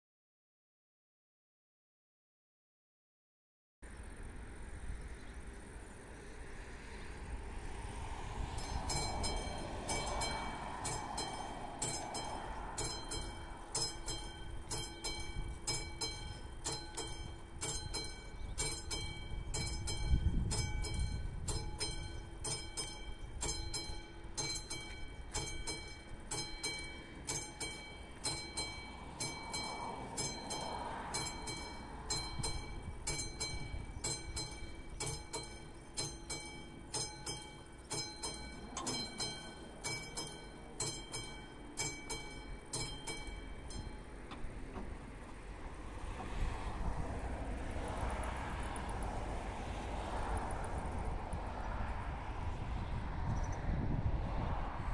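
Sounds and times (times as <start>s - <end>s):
level crossing bell ringing: 8.6s - 44.2s.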